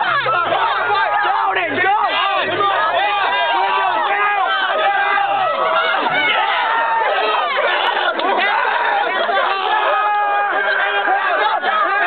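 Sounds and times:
babble of voices: 0.0s - 12.0s.

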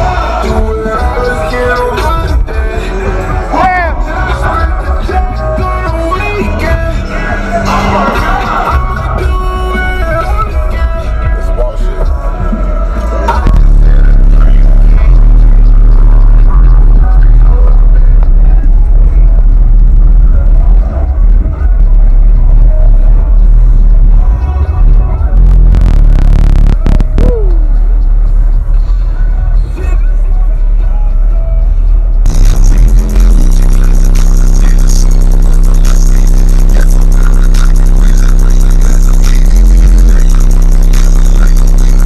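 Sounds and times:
subwoofers playing bass-heavy music: 0.0s - 42.0s
deep bass note held: 25.2s - 27.6s, 32.2s - 42.0s.

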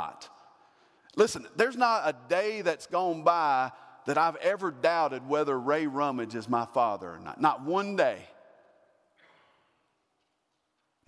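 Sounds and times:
man speaking with echo: 0.0s - 9.1s
faint breath: 9.2s - 9.8s.

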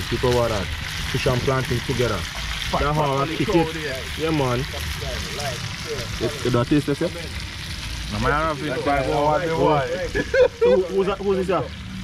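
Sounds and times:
man talking: 0.0s - 7.4s, 8.1s - 11.7s.

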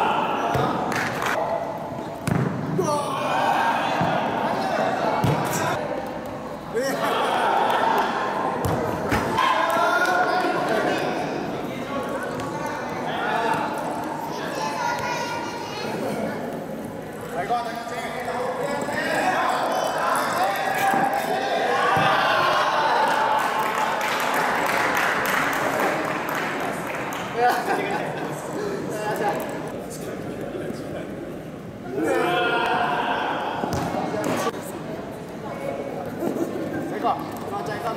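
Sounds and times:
voices in a sports hall: 0.0s - 37.9s
football thudding on court floor: 2.2s - 2.6s
children shouting in echoing hall: 14.4s - 16.0s.

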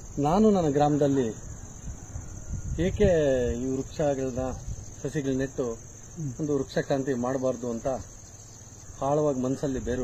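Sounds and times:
insects chirring: 0.0s - 10.0s
man speaking: 9.0s - 10.0s.

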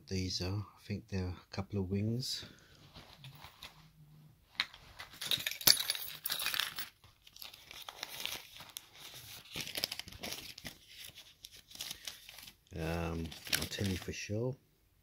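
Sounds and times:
paper wrapper crinkling: 2.9s - 3.8s, 6.3s - 14.2s.

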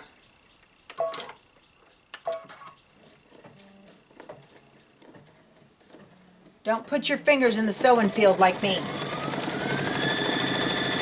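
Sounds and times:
embroidery machine stitching: 7.0s - 11.0s.

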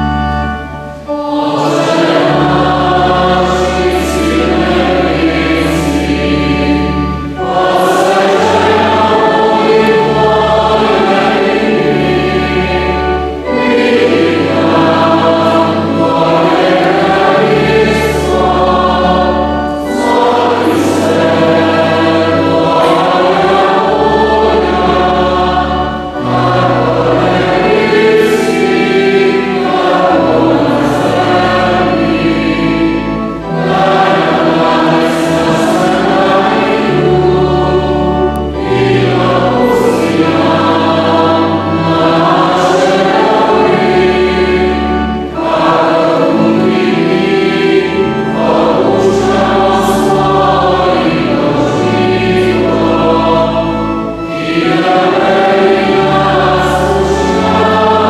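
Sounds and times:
choir singing sacred music: 0.0s - 58.0s
sustained low accompanying notes: 0.0s - 58.0s.

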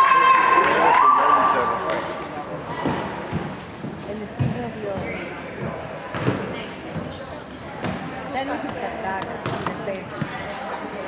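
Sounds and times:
players and spectators calling out: 0.0s - 3.4s.

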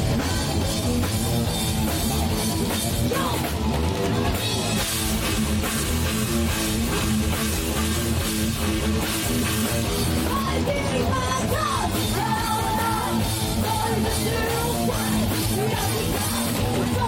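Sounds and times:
drum kit: 0.0s - 17.0s
electric guitar: 0.0s - 17.0s
heavy metal band playing live: 0.0s - 17.0s.

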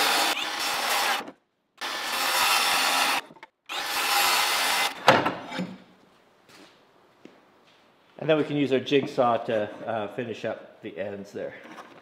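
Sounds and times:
circular saw cutting plywood: 0.0s - 5.0s.

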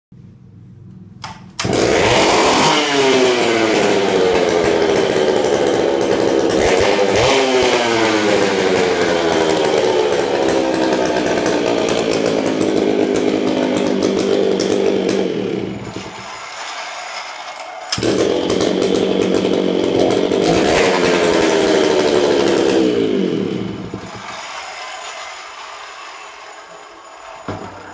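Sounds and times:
chainsaw engine revving: 1.6s - 27.9s.

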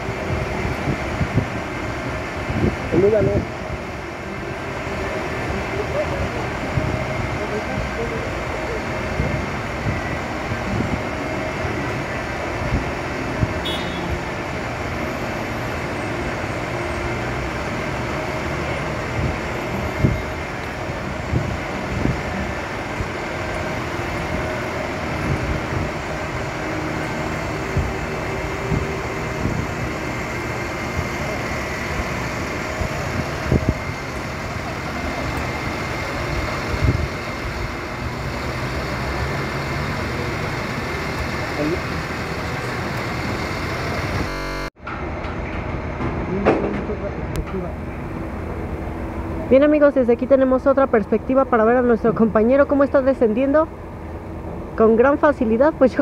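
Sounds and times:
traffic noise: 0.0s - 56.0s.

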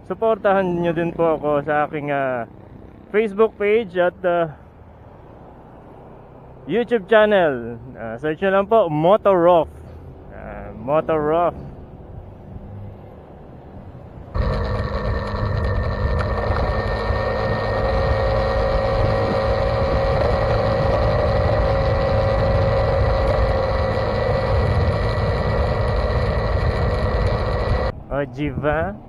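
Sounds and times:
motorcycle engine running: 14.4s - 27.9s
wind rumble on microphone: 14.4s - 29.0s.

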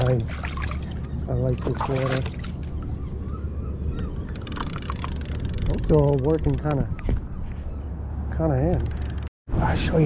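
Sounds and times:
fishing reel ratcheting: 4.4s - 6.7s.

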